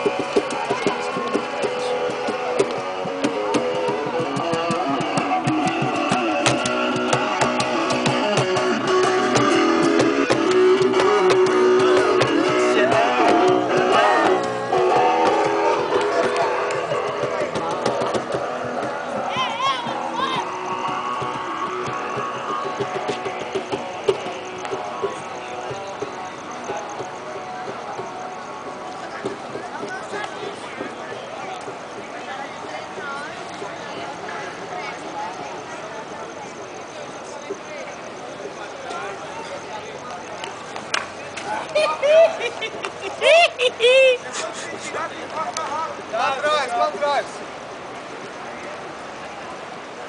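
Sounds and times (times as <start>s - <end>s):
strummed guitar music: 0.0s - 30.1s.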